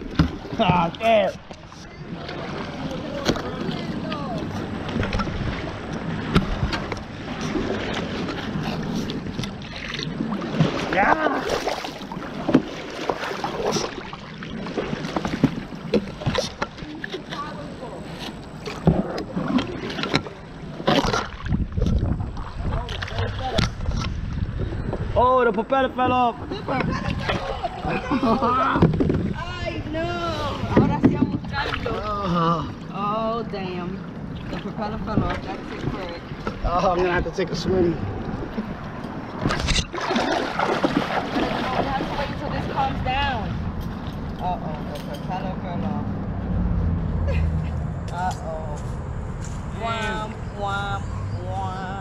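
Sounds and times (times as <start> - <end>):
water rushing past hull: 0.0 - 48.3.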